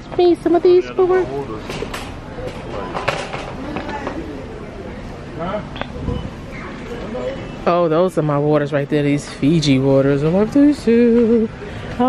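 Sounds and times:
faint voices: 0:00.0 - 0:12.0.

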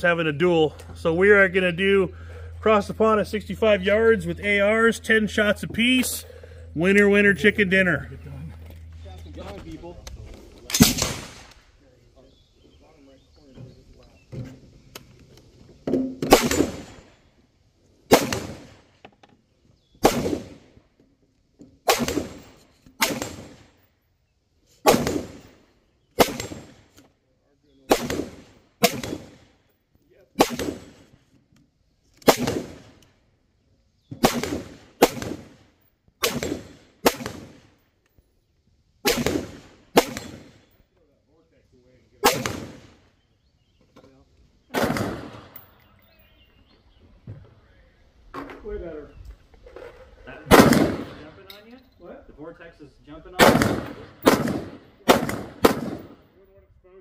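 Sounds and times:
rifle shots: 0:10.7 - 0:11.7, 0:16.2 - 0:17.1, 0:18.1 - 0:18.9, 0:20.0 - 0:20.7, 0:21.8 - 0:23.8, 0:24.8 - 0:25.6, 0:26.2 - 0:26.9, 0:27.9 - 0:29.6, 0:30.4 - 0:31.1, 0:32.2 - 0:33.0, 0:34.2 - 0:37.8, 0:39.0 - 0:40.7, 0:42.2 - 0:43.0, 0:44.7 - 0:45.6, 0:50.5 - 0:51.4, 0:53.4 - 0:56.3.

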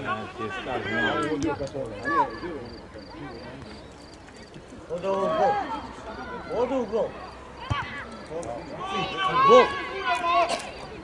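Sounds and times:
people shouting and talking: 0:00.0 - 0:11.0.

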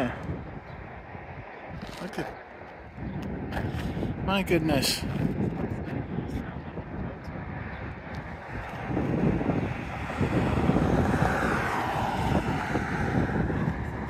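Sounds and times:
wind rumbling on microphone: 0:00.0 - 0:14.0
vehicle going by: 0:07.7 - 0:14.0.

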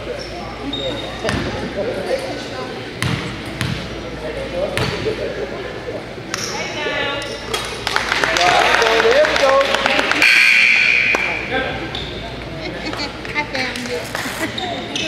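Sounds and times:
basketball bouncing on wooden floor: 0:03.0 - 0:03.8.

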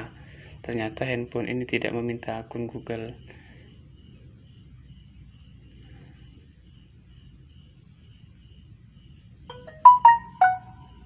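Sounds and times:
phone notification chime: 0:09.5 - 0:10.8.

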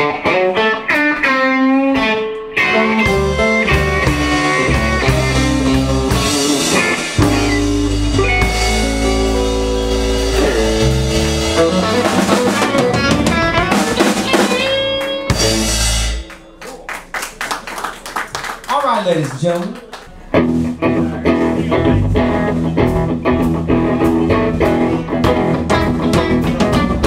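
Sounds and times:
faint guitar notes: 0:00.0 - 0:16.9, 0:20.2 - 0:27.0
electric blues band playing: 0:00.0 - 0:18.5, 0:20.0 - 0:27.0.

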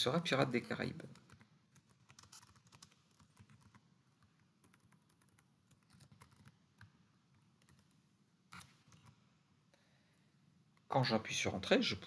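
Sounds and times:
faint keyboard typing: 0:00.7 - 0:09.3.

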